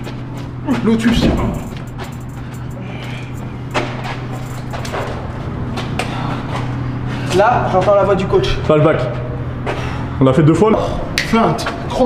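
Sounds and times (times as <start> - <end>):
feet scuffing on concrete floor: 0.0 - 6.8
low hum: 0.0 - 12.0.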